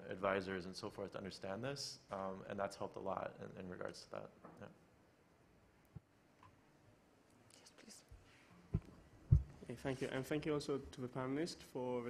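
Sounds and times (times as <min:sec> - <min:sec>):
faint whispering: 0:07.4 - 0:08.5
short low thump: 0:08.7 - 0:09.6.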